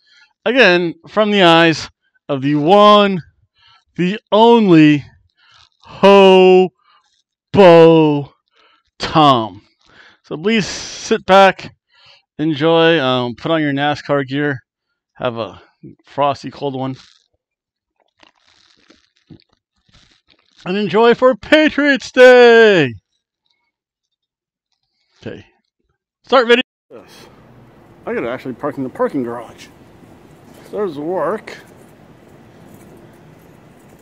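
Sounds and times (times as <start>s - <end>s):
low background noise: 27.0s - 34.0s.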